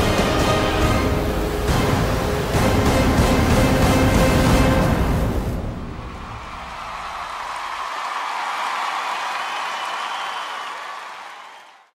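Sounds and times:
low bass music: 0.0s - 6.3s
audience applauding and cheering: 5.9s - 11.9s.

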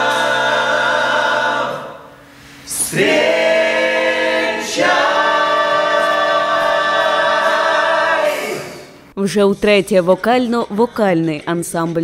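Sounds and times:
male vocal group singing a chord: 0.0s - 9.0s.

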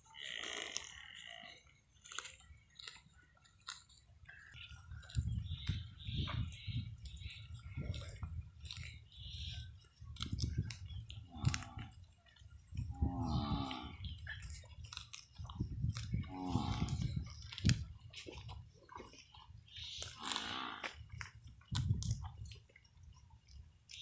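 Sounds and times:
grass crunching and tearing: 0.1s - 22.7s
water buffalo mooing: 12.9s - 14.0s, 16.3s - 17.0s, 20.2s - 21.0s.

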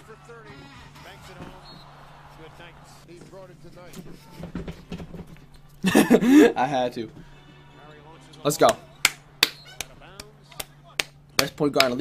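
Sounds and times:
sharp hand claps: 8.6s - 12.0s.

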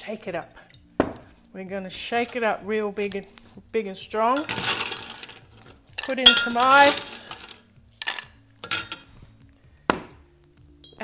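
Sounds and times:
ice cube clinking into glass: 4.4s - 9.1s.

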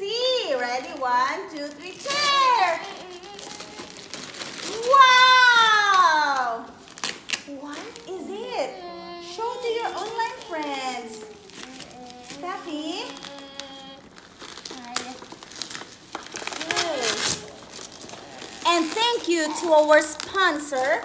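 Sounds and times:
wrapping paper tearing and crinkling: 0.1s - 21.0s
children's voices: 1.8s - 6.7s, 7.7s - 14.1s.

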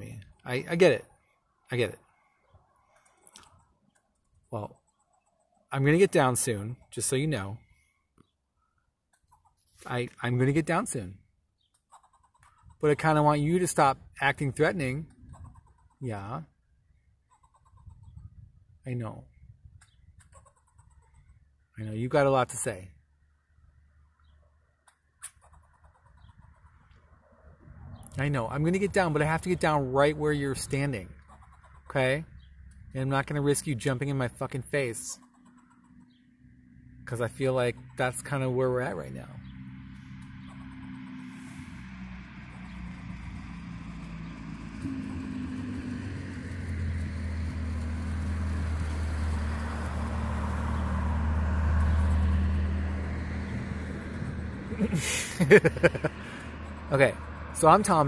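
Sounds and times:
squirrel alarm calls: 8.6s - 9.8s, 11.5s - 13.3s, 15.1s - 16.2s, 16.9s - 18.4s, 19.8s - 21.6s, 24.2s - 26.9s, 30.8s - 32.8s, 34.9s - 36.4s
vehicle passing by: 25.4s - 58.0s.

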